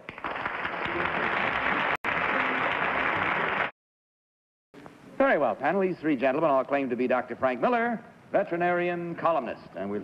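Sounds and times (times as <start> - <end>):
audience applauding: 0.0 - 3.8.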